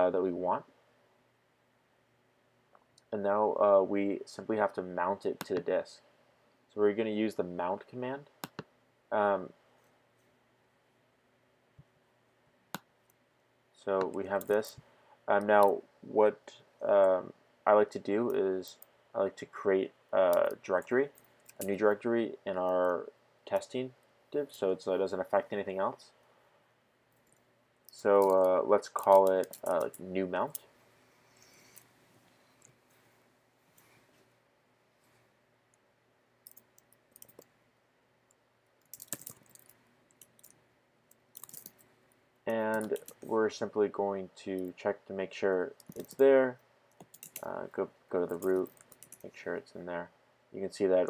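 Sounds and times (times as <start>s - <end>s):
man speaking: 0.0s - 0.7s, 3.1s - 6.0s, 6.7s - 8.3s, 9.1s - 9.6s, 13.8s - 26.2s, 27.9s - 30.7s, 42.5s - 46.6s, 47.4s - 51.0s
computer keyboard typing: 28.2s - 30.6s, 36.4s - 37.5s, 38.8s - 40.6s, 41.3s - 41.8s, 42.5s - 43.3s, 45.8s - 46.2s, 46.9s - 47.5s, 48.3s - 49.2s
computer mouse click: 36.4s - 37.5s, 46.9s - 47.5s, 48.3s - 49.2s.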